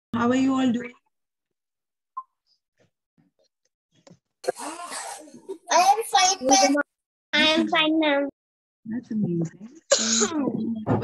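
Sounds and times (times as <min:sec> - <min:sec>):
child coughing: 0:04.4 - 0:05.9, 0:09.9 - 0:10.4
child speaking: 0:05.5 - 0:08.3.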